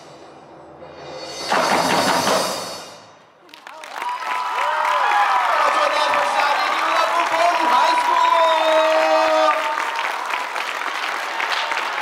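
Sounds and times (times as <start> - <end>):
drum hit ringing: 1.2 - 3.2
audience applause and cheering: 3.4 - 12.0.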